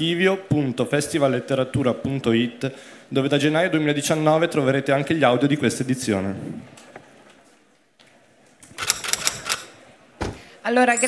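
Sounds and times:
quick run of sharp clicks: 8.7 - 9.7.

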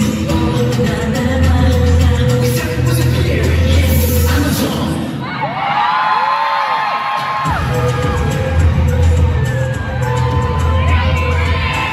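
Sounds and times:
pop dance music over sound system: 0.0 - 11.9
fans screaming and cheering: 4.5 - 11.9.

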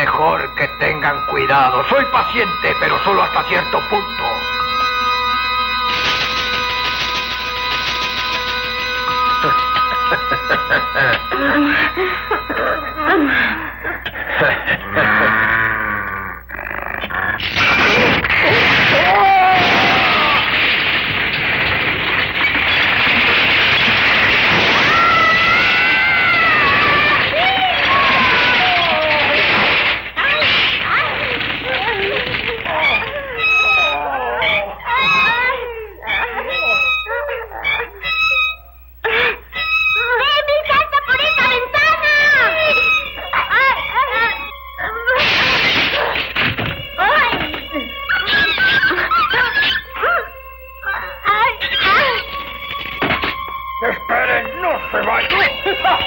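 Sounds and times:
window glass shattering: 0.0 - 11.3, 17.4 - 33.9, 45.1 - 49.6
background music: 0.0 - 13.8, 46.8 - 56.0
wailing cries: 8.7 - 52.7
rumble of falling masonry: 17.4 - 33.9, 45.1 - 49.2
voices shouting: 17.7 - 20.8, 23.4 - 38.7.

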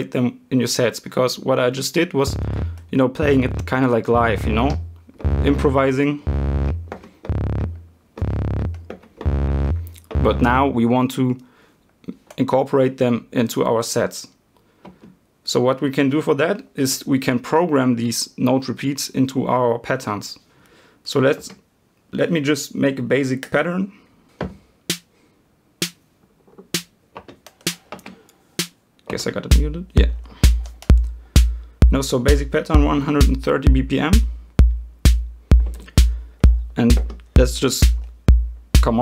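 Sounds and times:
buzzy drum machine bassline: 2.2 - 10.8, 24.9 - 25.1, 25.8 - 26.0, 26.7 - 26.9, 27.6 - 27.9, 28.6 - 28.8, 29.4 - 39.0.

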